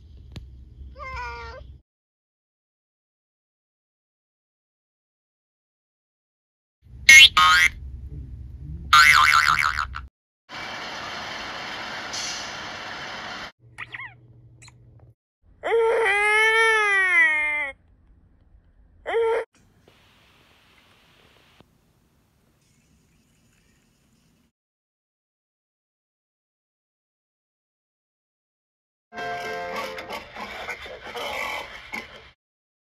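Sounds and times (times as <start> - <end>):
cartoon springy boing: 8.9 - 10.0
steady hiss: 19.7 - 24.5.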